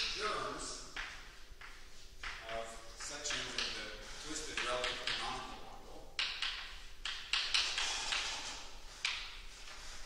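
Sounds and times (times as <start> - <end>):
chalk tapping on blackboard: 0.8 - 10.0
chalk scratching on blackboard: 7.4 - 10.0.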